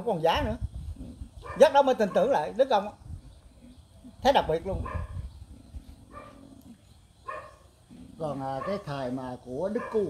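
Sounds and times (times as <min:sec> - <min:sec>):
distant dog barking: 0:01.4 - 0:02.6, 0:04.8 - 0:05.3, 0:06.0 - 0:07.8, 0:08.4 - 0:10.0.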